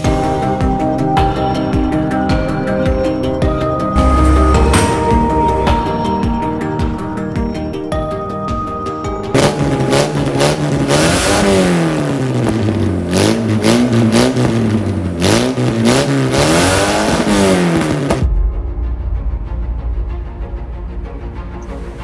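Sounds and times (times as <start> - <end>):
car engine revving: 2.5 - 7.7, 9.3 - 18.3.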